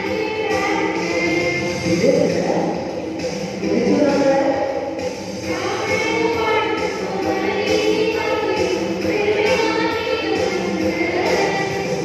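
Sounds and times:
music: 0:00.0 - 0:12.0
group singing action song: 0:05.4 - 0:12.0.

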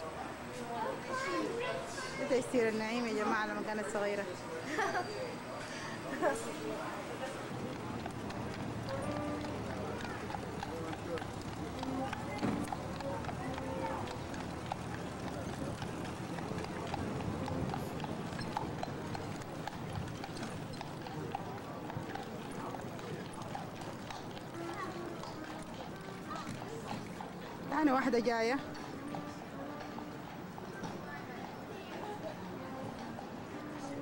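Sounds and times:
background voices: 0:05.7 - 0:34.0
horse hooves on pavement: 0:06.4 - 0:34.0.

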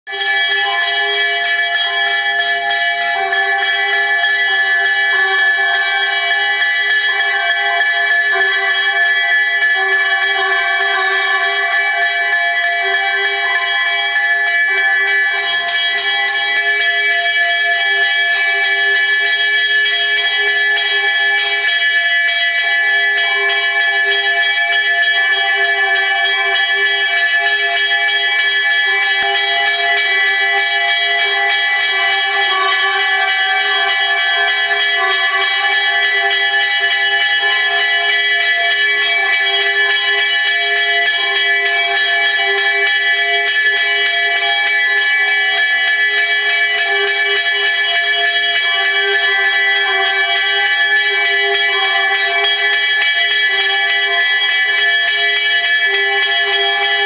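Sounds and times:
temple bell ringing rapidly: 0:00.1 - 0:57.0.

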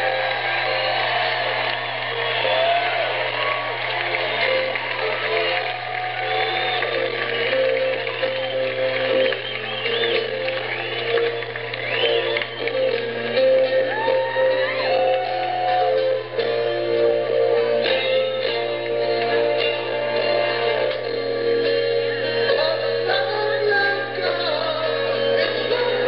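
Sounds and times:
audience whooping and cheering: 0:00.0 - 0:22.5
live rock band music: 0:02.2 - 0:26.0.

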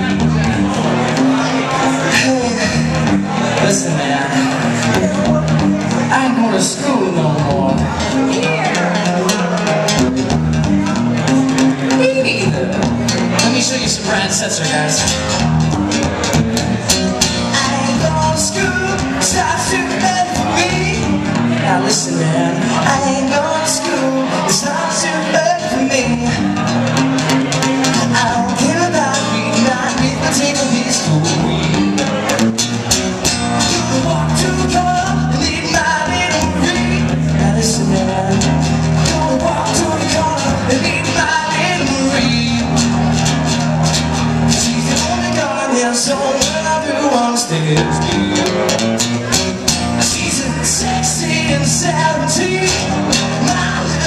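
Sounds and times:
man singing: 0:00.0 - 0:32.6, 0:33.2 - 0:54.0
acoustic guitar strumming: 0:00.0 - 0:54.0.

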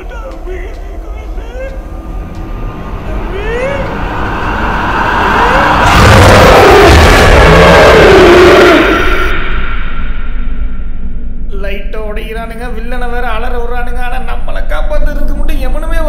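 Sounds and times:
loud noisy rush with wavering tone: 0:00.0 - 0:11.5
low rumble: 0:00.0 - 0:15.3.

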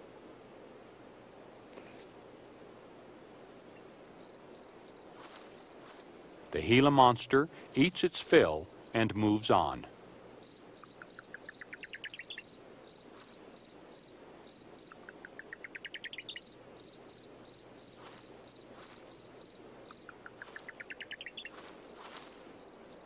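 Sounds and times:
cricket chirping: 0:04.2 - 0:06.1, 0:10.4 - 0:23.0
insect call with rising pulses: 0:04.2 - 0:06.1, 0:10.4 - 0:23.0.

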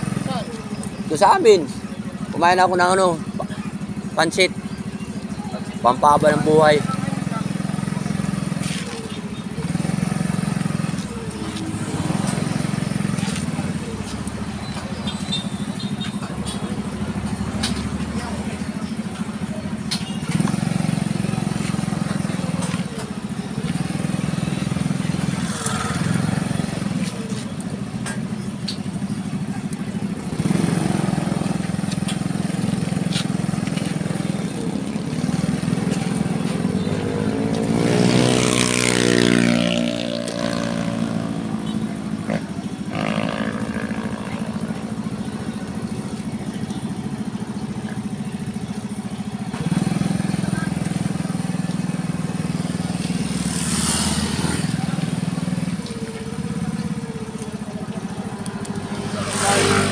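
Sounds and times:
vehicle engine idling: 0:00.0 - 0:59.9
vehicle passing by: 0:30.3 - 0:47.0, 0:52.4 - 0:59.9.

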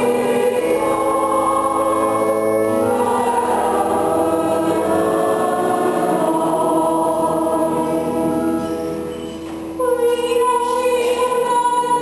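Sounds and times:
choir singing a hymn: 0:00.0 - 0:09.2.

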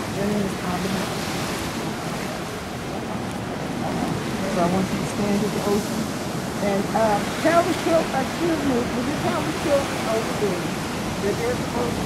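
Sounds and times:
ocean surf washing onto beach: 0:00.0 - 0:12.0.

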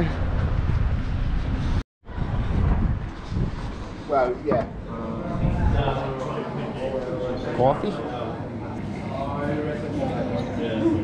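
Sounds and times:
wind buffeting microphone: 0:00.0 - 0:06.2.

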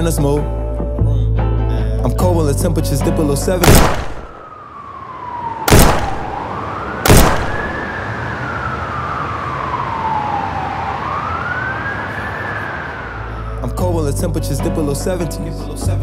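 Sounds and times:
loud sharp bangs: 0:03.6 - 0:04.5, 0:05.7 - 0:08.0
emergency siren wailing: 0:04.2 - 0:13.8.

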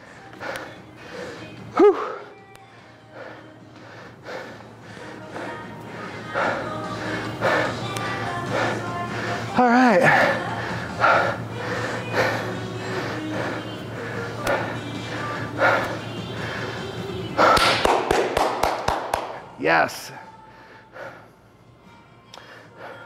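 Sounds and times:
background music: 0:00.0 - 0:23.0.

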